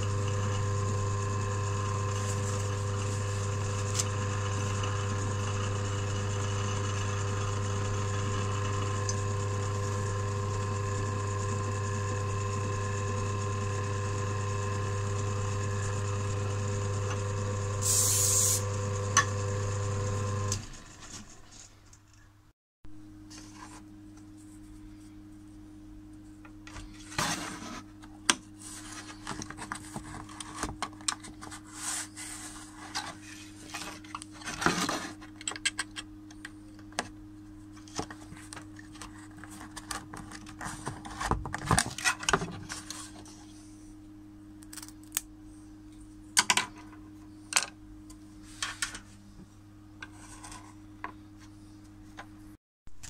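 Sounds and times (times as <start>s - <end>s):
steady low hum: 23.0s - 52.6s.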